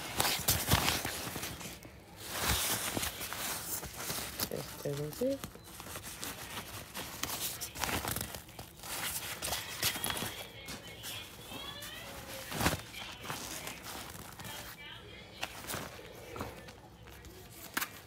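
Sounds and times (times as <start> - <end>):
backpack fabric rustling: 0.0 - 18.0.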